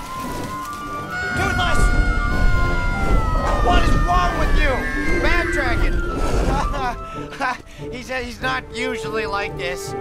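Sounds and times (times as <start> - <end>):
orchestral film score: 0.0 - 10.0
voice-like calls: 1.0 - 7.3.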